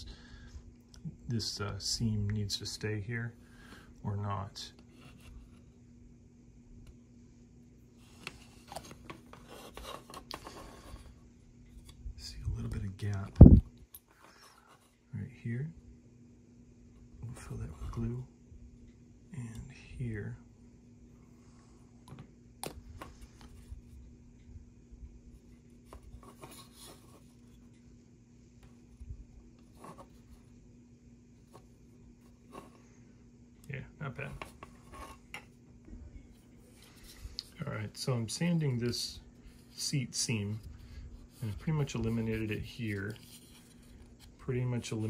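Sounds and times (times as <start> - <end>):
faint steady hum: 0.0 - 45.0
plastic model being handled: 8.0 - 12.0, 25.4 - 27.8, 36.4 - 45.0.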